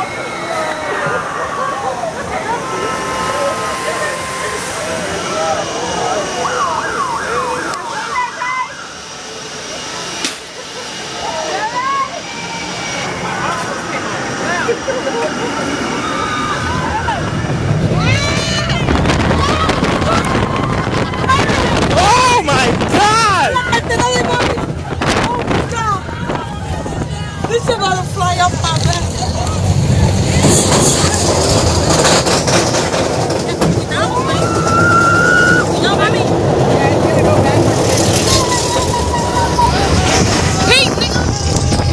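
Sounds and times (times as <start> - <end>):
siren-like wail: 0.0 - 9.6, 15.6 - 21.8
roller coaster train on track: 0.0 - 41.9
wind buffeting microphone: 15.6 - 41.9.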